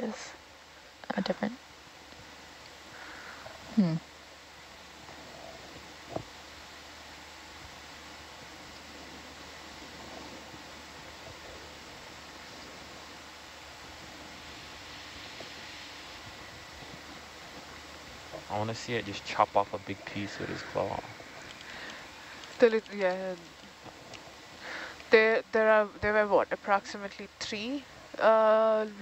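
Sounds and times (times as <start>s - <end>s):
faint background hiss: 0.0s - 29.0s.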